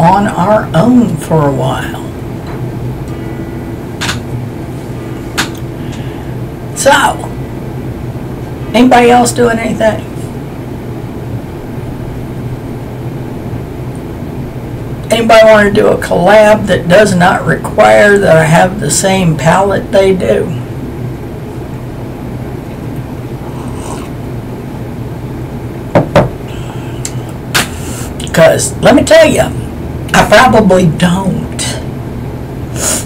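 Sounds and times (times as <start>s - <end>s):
low background rumble: 0.0s - 33.0s
low room hum: 0.0s - 33.0s
mug knocking on desk: 26.0s - 26.4s.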